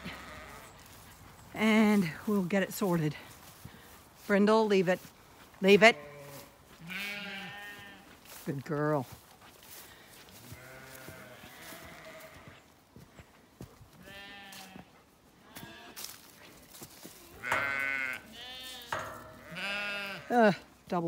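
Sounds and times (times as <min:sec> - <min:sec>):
sheep bleating: 0:00.0 - 0:00.8, 0:05.8 - 0:08.2, 0:10.4 - 0:12.6, 0:14.0 - 0:16.0, 0:17.2 - 0:20.6.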